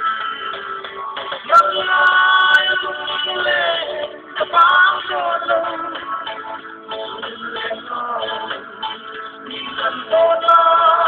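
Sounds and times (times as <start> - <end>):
man singing slow melody: 1.5 - 6.4, 7.0 - 11.0.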